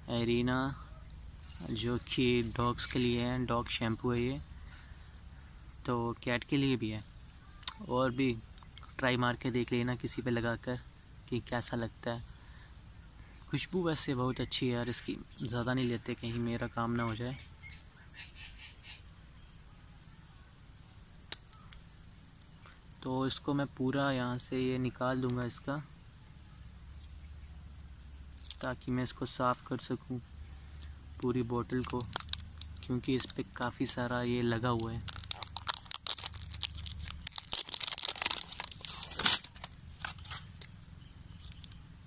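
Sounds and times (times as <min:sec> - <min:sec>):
faint steady high tone: 0:00.0 - 0:35.1
quiet outdoor background: 0:00.0 - 0:42.0
plastic wrapping crinkling: 0:28.4 - 0:28.7, 0:31.8 - 0:33.7, 0:34.6 - 0:40.8, 0:41.4 - 0:41.8
plastic wrapping ripping: 0:35.1 - 0:40.4.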